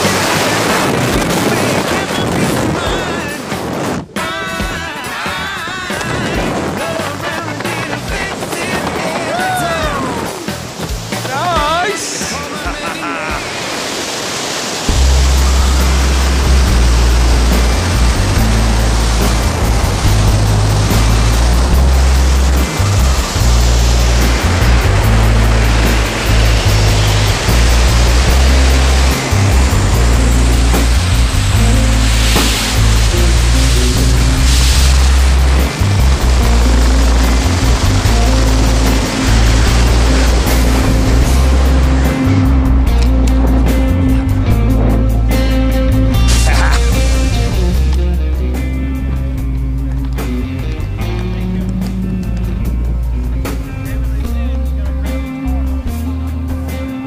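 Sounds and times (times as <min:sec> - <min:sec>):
music with heavy bass line: 0:00.0 - 0:13.6, 0:14.8 - 0:57.0
wind noise: 0:00.0 - 0:54.3.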